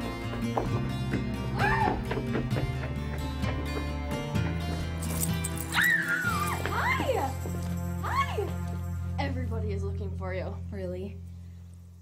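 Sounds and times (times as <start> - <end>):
background music: 0.0 - 12.0
girl squealing: 1.6 - 2.0, 5.7 - 7.2.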